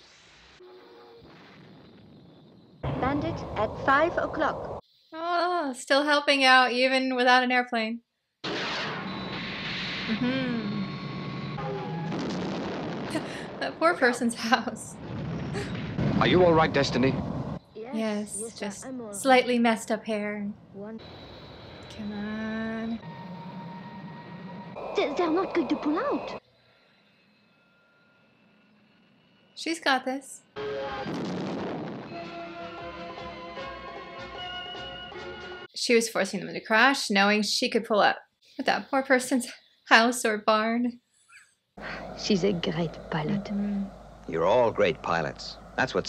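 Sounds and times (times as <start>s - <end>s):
explosion: 0.0s - 4.8s, 8.4s - 17.6s, 30.6s - 33.2s
faint tones: 10.1s - 12.2s, 16.3s - 30.6s, 41.3s - 46.0s
dramatic music: 10.8s - 12.8s, 30.6s - 35.7s
jet engine rushing: 15.2s - 17.6s, 41.8s - 46.0s.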